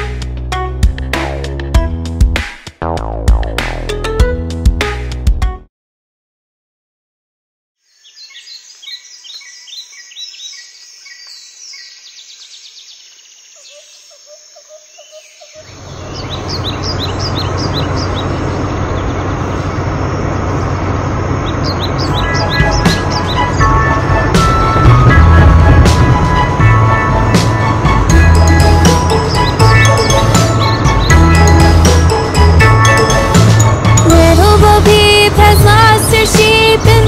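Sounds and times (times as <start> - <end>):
birds chirping: 7.8 - 26.5, 27.2 - 33.8
engine rumble: 15.6 - 37.0.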